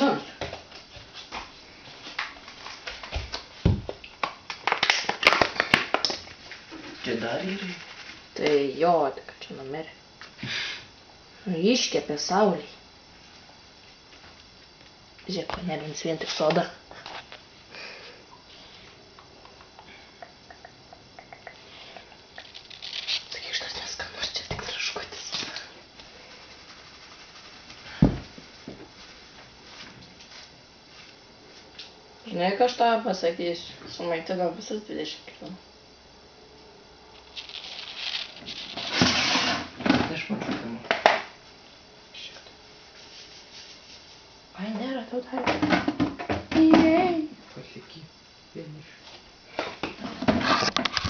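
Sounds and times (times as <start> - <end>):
dull thump: 28.0 - 28.3.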